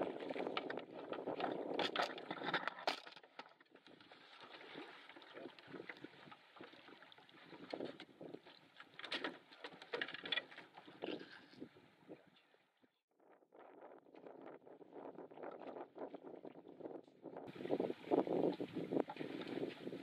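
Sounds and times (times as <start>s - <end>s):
wind on microphone: 0.0s - 2.6s, 13.2s - 20.0s.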